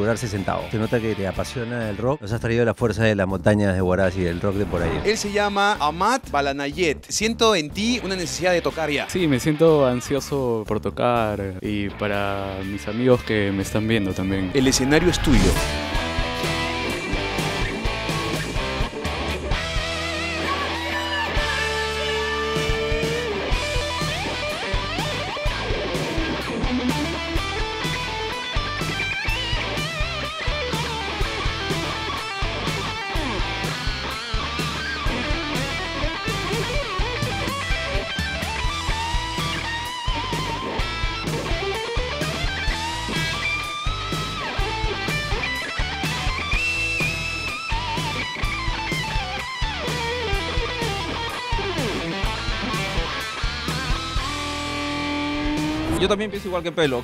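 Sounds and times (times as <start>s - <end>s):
backing beat and bass: 13.5s - 57.0s
distorted electric guitar solo: 13.7s - 56.3s.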